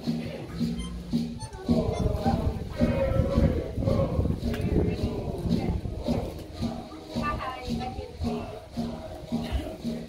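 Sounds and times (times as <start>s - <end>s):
pulsing bass notes: 0.4s - 9.7s
live band playing: 0.6s - 2.8s
people talking: 1.4s - 9.9s.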